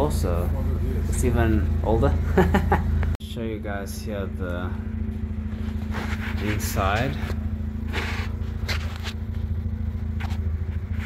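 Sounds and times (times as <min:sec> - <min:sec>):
rotary engine idling: 0:00.0 - 0:11.0
short rustles: 0:05.1 - 0:11.0.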